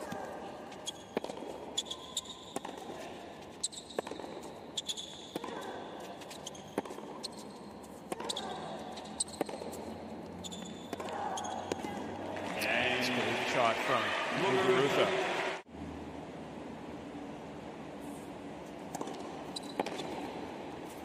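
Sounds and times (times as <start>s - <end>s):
tennis shoes squeaking: 0.0s - 12.8s, 18.9s - 21.0s.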